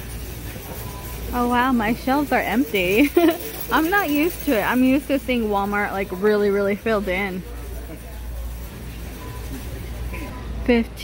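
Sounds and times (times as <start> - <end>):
faint distant voices: 6.7 - 11.0.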